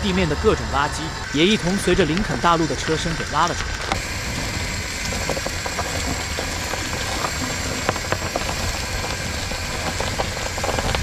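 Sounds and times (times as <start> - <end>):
crackling of dead leaves: 0.0 - 11.0
vehicle engine idling: 0.0 - 11.0.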